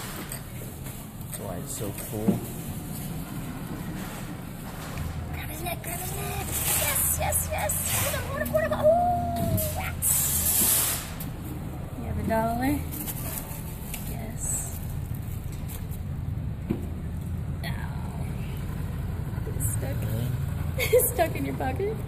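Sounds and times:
indistinct voices: 5.0s - 10.7s
burst of hiss: 10.0s - 11.2s.

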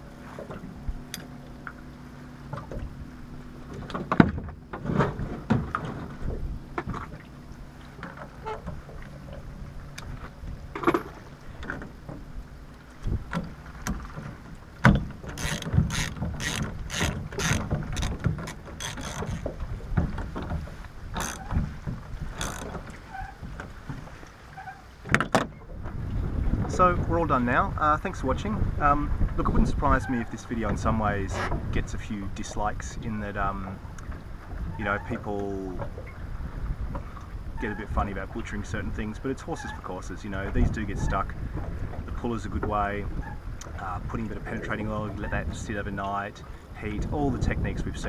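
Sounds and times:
ratchet wrench clicking: 15.4s - 18.1s.

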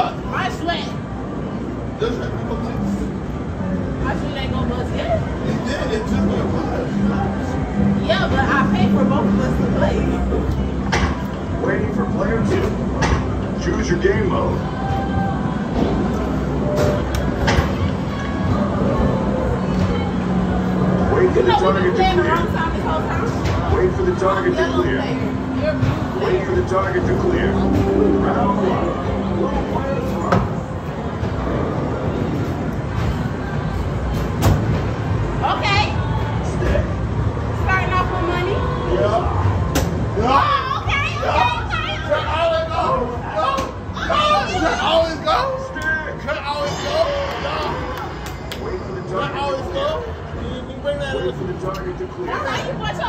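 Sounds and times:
background music: 0.0s - 41.4s
low rumble of game machines: 0.0s - 53.0s
arcade music: 24.5s - 30.1s.

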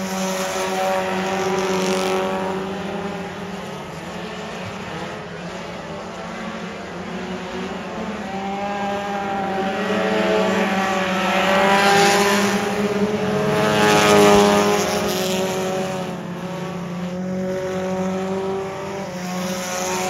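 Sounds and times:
race car engines passing: 0.0s - 20.0s.

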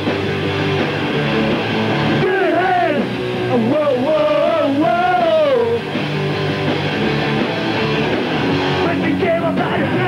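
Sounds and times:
punk rock band playing live: 0.0s - 10.0s.

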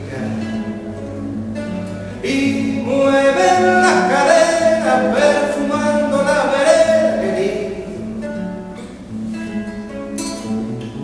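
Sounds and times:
acoustic guitar chords: 0.0s - 11.0s
person singing: 2.2s - 8.1s.

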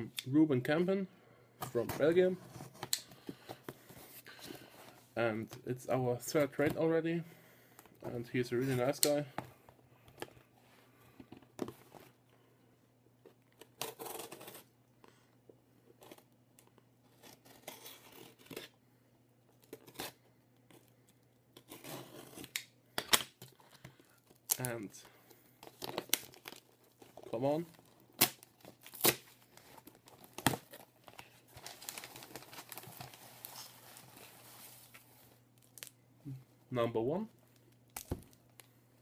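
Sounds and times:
cardboard package cut and torn open: 13.6s - 14.7s, 17.1s - 18.7s, 21.6s - 22.6s, 28.2s - 30.9s, 31.6s - 33.5s
plastic wrapping crinkling: 25.7s - 35.0s
packing tape tearing: 28.1s - 29.4s.

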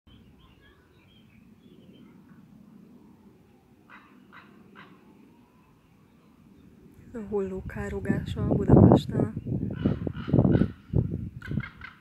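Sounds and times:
faint small bird chirps: 0.1s - 2.4s
raven croaking: 3.8s - 5.3s, 9.6s - 12.0s.

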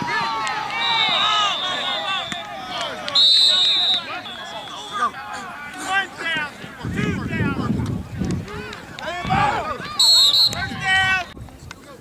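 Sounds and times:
player chatter: 0.0s - 12.0s
whistle blast: 0.7s - 2.5s, 3.1s - 5.1s, 9.9s - 10.7s.

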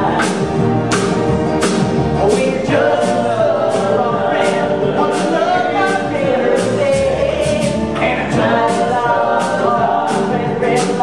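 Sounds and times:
live band music: 0.0s - 11.0s.

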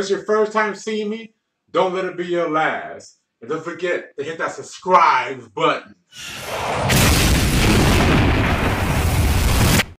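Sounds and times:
loud explosion blast: 6.2s - 10.0s.

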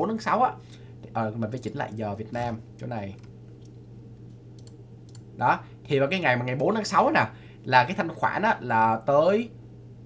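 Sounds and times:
computer mouse clicks: 2.8s - 5.3s.

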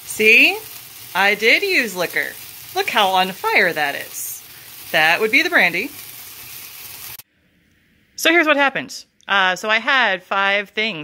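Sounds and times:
food sizzling in a skillet: 0.0s - 7.2s.

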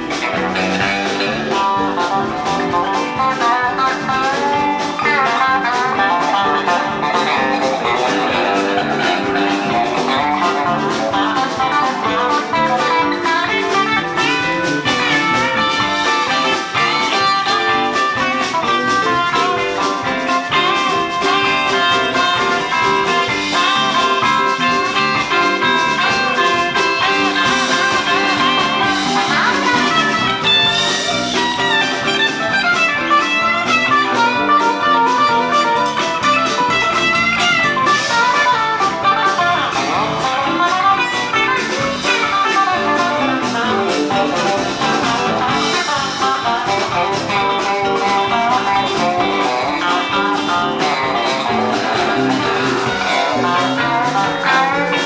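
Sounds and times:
lead electric guitar bent notes: 0.0s - 55.0s
live rock band playing: 0.0s - 55.0s.

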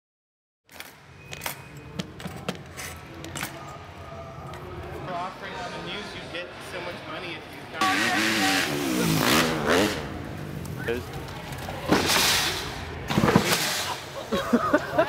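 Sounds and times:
dirt bike engine revving: 7.8s - 10.5s
person laughing: 13.9s - 15.0s.

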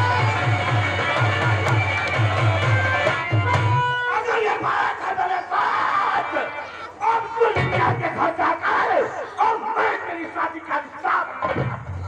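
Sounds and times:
man shouting over loudspeakers: 0.0s - 1.7s, 2.4s - 11.9s.

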